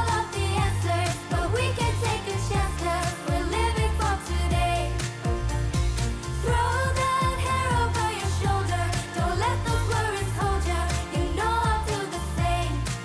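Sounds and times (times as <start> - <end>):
heavy bass line: 0.0 - 13.0
pop song with lead vocal: 0.0 - 13.0
steady drum beat: 0.0 - 13.0.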